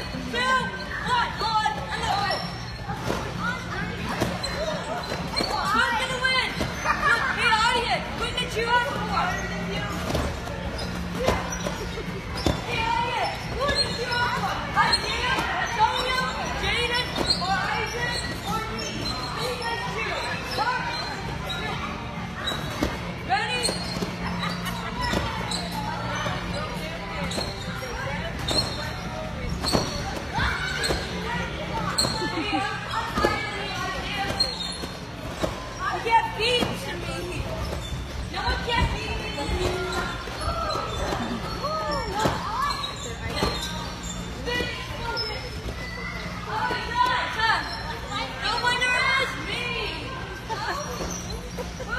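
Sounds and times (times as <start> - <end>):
trampoline bouncing thumps: 8.0 - 47.2
children shouting and chattering: 10.7 - 51.9.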